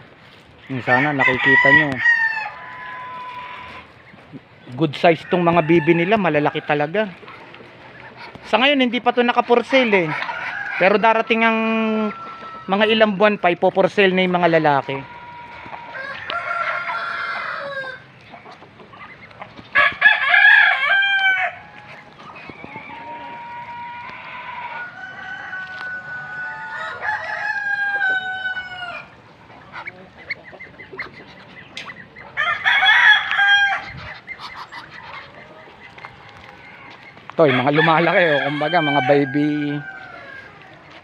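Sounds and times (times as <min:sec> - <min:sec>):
roosters crowing: 0:00.0 - 0:41.0
bird calls: 0:07.1 - 0:08.7, 0:28.6 - 0:37.4.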